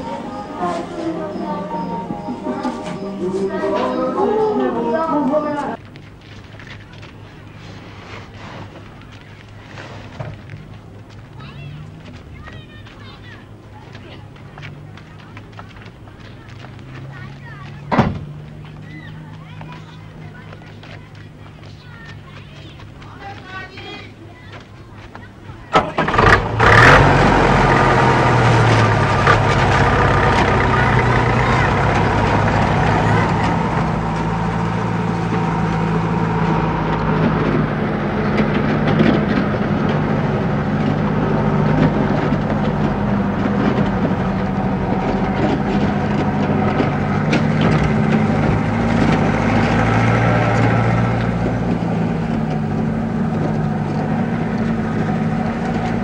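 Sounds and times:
truck engine starting and running: 0:00.0 - 0:23.6, 0:25.6 - 0:56.0.

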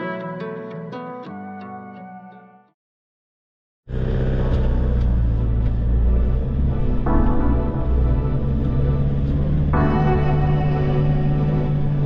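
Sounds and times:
low vehicle rumble: 0:03.9 - 0:12.0
ambient background music: 0:04.0 - 0:12.0.

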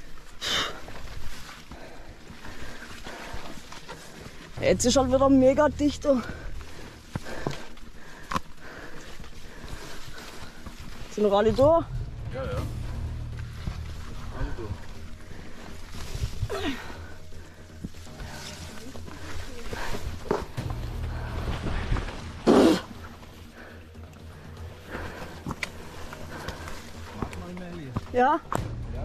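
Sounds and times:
background music: 0:01.8 - 0:29.0.

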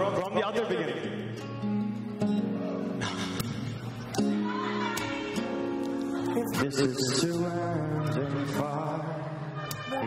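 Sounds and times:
picked acoustic guitar: 0:00.0 - 0:10.0.

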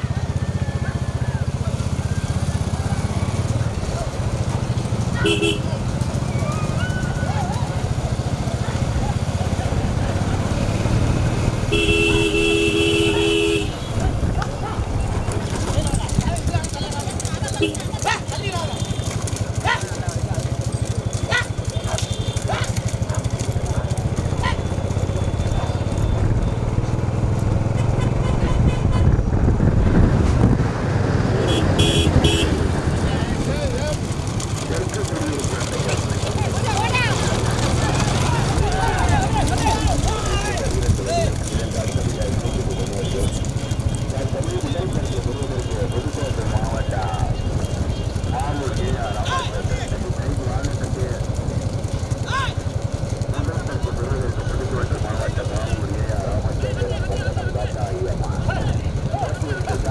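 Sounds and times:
motorcycle engine and road rumble: 0:00.0 - 0:59.9
two-note motorcycle horn: 0:05.2 - 0:05.8, 0:11.6 - 0:14.1, 0:27.6 - 0:29.2, 0:31.4 - 0:32.6.

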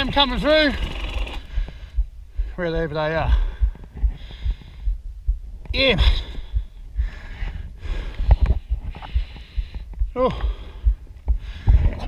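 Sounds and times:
dirt bike engine idling: 0:00.0 - 0:01.7.

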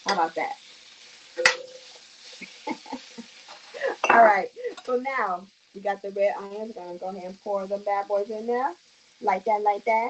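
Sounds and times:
spatula clanking on pan: 0:00.0 - 0:00.4, 0:01.4 - 0:02.6, 0:03.5 - 0:05.0
spatula stirring in pan: 0:00.0 - 0:05.8
peppers sizzling in skillet: 0:00.0 - 0:10.0.

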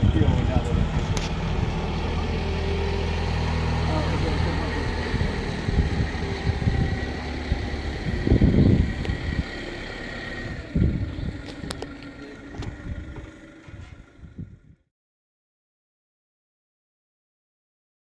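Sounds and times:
people's voices: 0:00.0 - 0:02.4, 0:03.2 - 0:09.3
engine idling: 0:00.0 - 0:14.8
loud low rumble: 0:00.0 - 0:14.9.

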